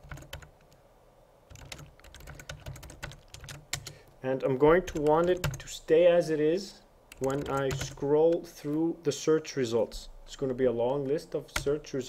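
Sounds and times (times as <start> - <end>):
computer keyboard typing: 0.0 - 0.7, 1.5 - 4.0, 4.8 - 5.7, 7.1 - 8.4, 11.5 - 11.8.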